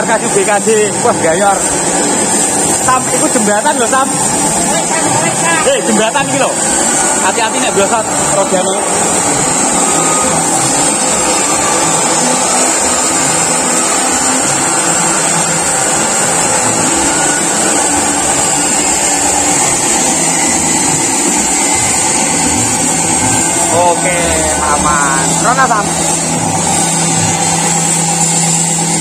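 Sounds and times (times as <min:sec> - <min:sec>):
machine hissing and whirring: 0:00.0 - 0:29.0.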